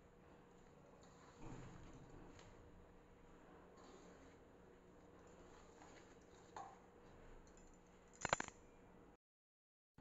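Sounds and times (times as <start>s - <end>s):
hands mixing dough in metal bowl: 0.0s - 8.1s
sharp clicks: 8.2s - 8.6s.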